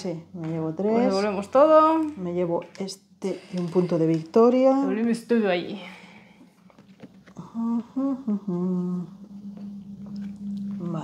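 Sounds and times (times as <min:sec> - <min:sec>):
person humming: 0:07.4 - 0:11.0.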